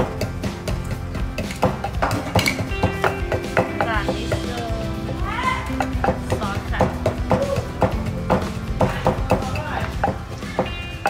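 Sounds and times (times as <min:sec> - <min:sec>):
background music: 0:00.0 - 0:11.0
wooden pestle pounding in mortar: 0:00.0 - 0:11.0.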